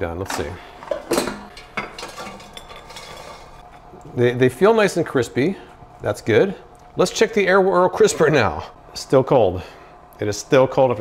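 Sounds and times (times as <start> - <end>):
air fryer basket clatter: 0.2 - 4.3.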